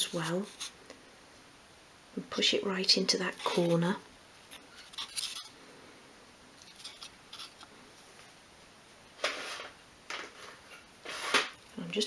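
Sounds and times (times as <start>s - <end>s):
fingers scraping small wood pieces: 4.5s - 5.5s, 6.6s - 7.6s.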